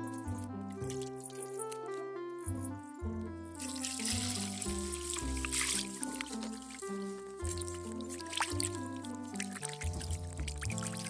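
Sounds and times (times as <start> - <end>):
background music held notes: 0.0 - 11.0
water pouring into metal bowl: 3.6 - 11.0.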